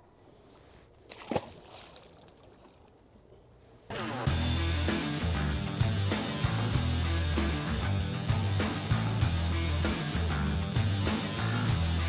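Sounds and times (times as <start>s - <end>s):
fish splashing into water: 1.0s - 3.0s.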